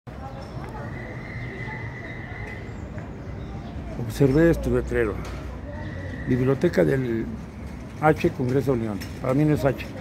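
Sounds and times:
city street noise: 0.1 - 10.0.

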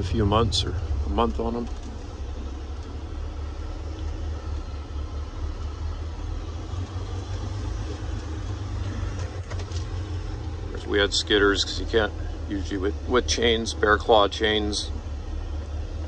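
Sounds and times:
road and cab noise: 0.0 - 16.0
vehicle engine rumble: 0.0 - 16.0.

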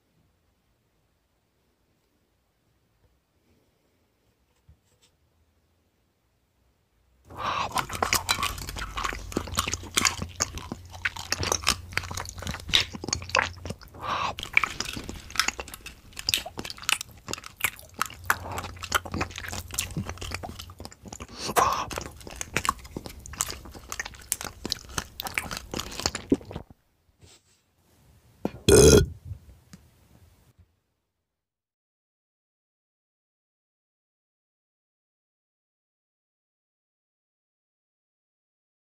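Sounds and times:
faint low hum: 0.0 - 27.2
crunchy chewing and biting: 7.3 - 26.7
loud burp: 28.6 - 29.1.

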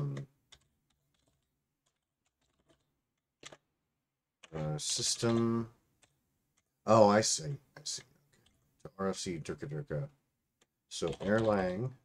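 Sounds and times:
faint keystrokes on keyboard: 0.0 - 3.7, 10.6 - 11.9.

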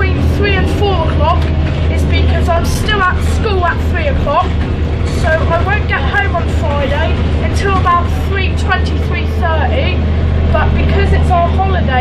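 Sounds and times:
bus engine droning: 0.0 - 12.0
people talking: 0.0 - 12.0.

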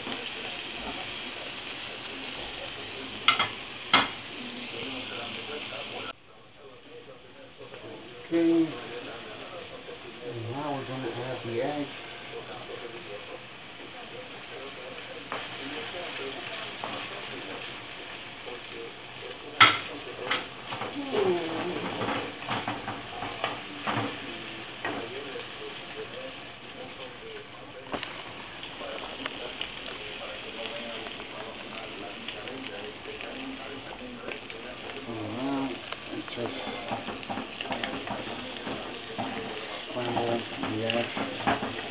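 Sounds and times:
eggs sizzling in a frying pan: 0.0 - 41.9.

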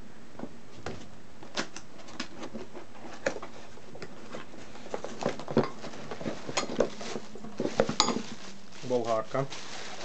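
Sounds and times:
plastic bag crinkling: 4.4 - 10.0.

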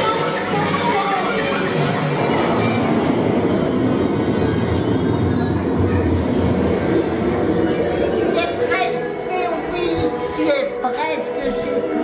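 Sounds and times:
ride car rumbling along track: 0.0 - 12.0.

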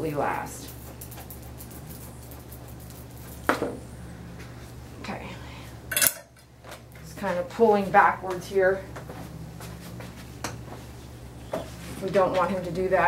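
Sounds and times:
steady low hum: 0.0 - 13.0
grooming tools clicking and clinking: 0.6 - 3.8, 5.9 - 7.1.

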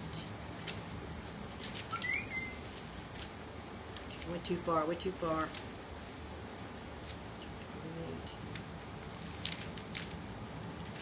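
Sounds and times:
thin pages being leafed through: 1.5 - 2.0, 2.6 - 4.4, 8.5 - 11.0
rising whistle: 1.9 - 2.6
short high chirp: 1.9 - 2.6.

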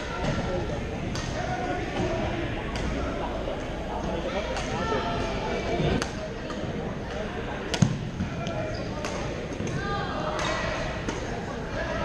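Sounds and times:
background voices and play: 0.0 - 12.0
rackets hitting shuttlecock: 7.7 - 8.0, 9.0 - 9.8.

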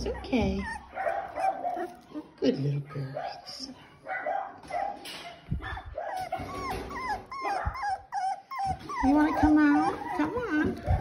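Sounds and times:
puppies whining: 0.0 - 3.7, 5.3 - 11.0.

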